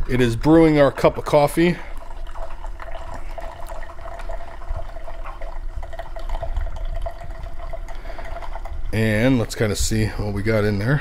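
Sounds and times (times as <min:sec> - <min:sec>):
coffee maker humming: 0:00.0 - 0:11.0
coffee streaming into mug: 0:00.1 - 0:10.7.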